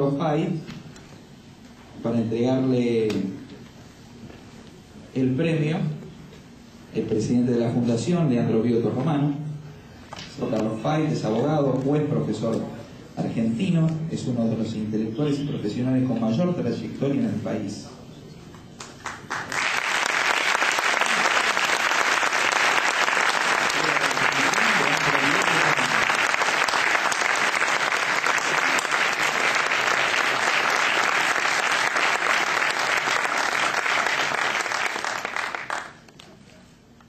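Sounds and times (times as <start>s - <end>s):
audience applauding: 18.8s - 36.2s.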